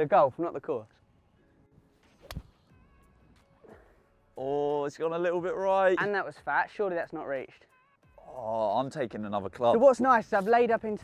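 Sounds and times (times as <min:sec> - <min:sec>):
golf club striking ball: 0:02.2 - 0:02.6.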